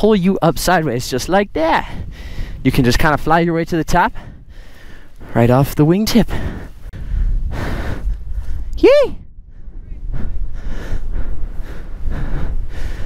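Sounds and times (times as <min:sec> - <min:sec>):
wind rushing over microphone: 0:00.0 - 0:13.0
person exclaiming: 0:08.8 - 0:09.2.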